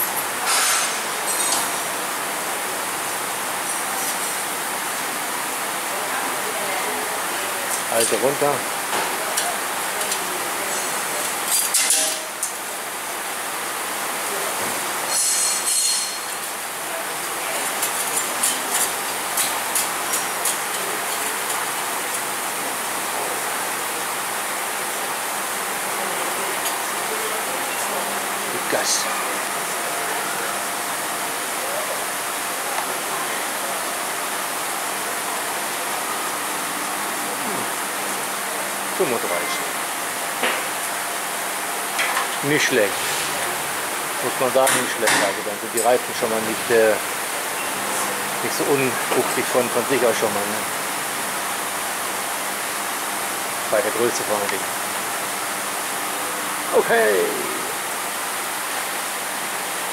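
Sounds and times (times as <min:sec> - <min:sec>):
steady workshop hiss: 0:00.0 - 0:59.9.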